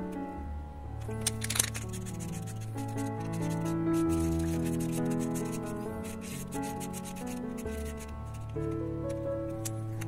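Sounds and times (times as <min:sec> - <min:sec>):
background music: 0:00.0 - 0:10.0
marker scrubbing plastic cup: 0:01.5 - 0:08.7.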